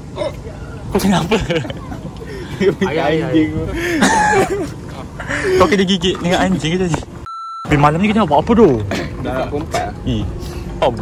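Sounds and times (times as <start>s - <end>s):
man hiccuping: 0.1s - 0.5s
young men laughing: 0.2s - 6.8s.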